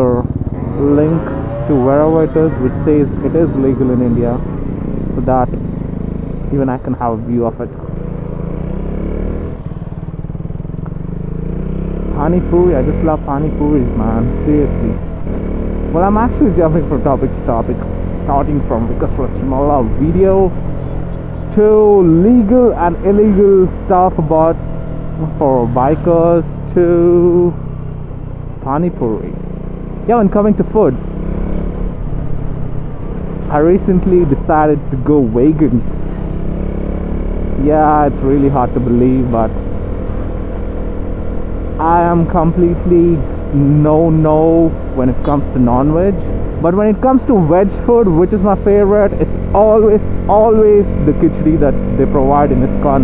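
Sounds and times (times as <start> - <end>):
motorcycle engine running: 0.0 - 53.0.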